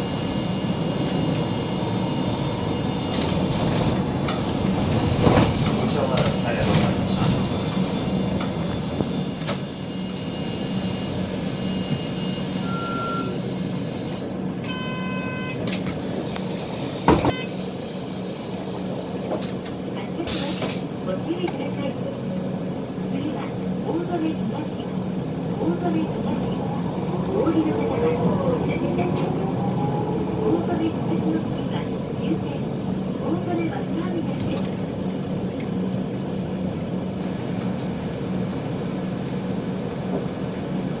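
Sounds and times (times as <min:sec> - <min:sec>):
bus engine drone: 0:00.0 - 0:41.0
voice announcement: 0:23.1 - 0:34.8.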